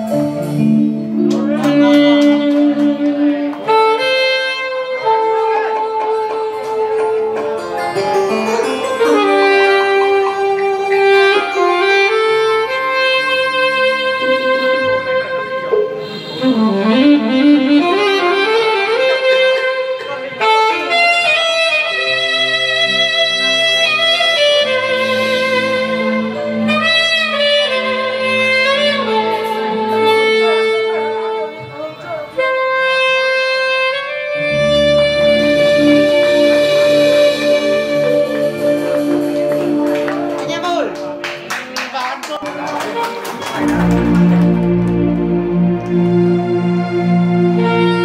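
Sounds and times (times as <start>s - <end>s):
saxophone melody: 0.0s - 41.3s, 42.4s - 48.0s
band accompaniment: 0.0s - 48.0s
hands clapping in even beat: 1.2s - 3.7s, 5.4s - 8.1s, 19.5s - 20.3s, 38.8s - 46.0s.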